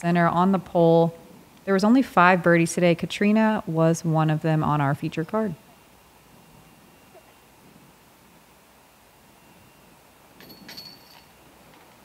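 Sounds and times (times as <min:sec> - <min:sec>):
chains jangling in disc golf basket: 0:10.4 - 0:11.4.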